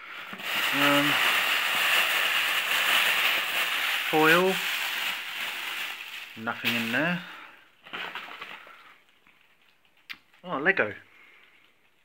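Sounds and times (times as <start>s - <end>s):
plastic bag rustling: 0.0s - 9.8s
aluminium foil crinkling: 0.1s - 10.4s.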